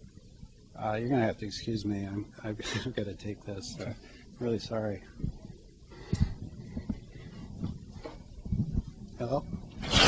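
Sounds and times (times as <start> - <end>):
faint low thuds: 5.1 - 9.7.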